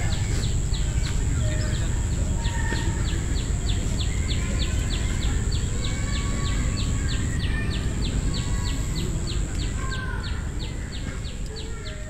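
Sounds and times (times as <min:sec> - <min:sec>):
steady high whine: 0:00.0 - 0:11.6.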